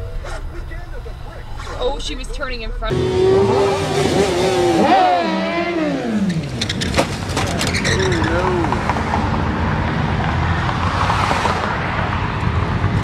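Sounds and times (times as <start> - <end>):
voices: 0.0 - 5.8, 7.3 - 8.9
car engines: 0.0 - 13.0.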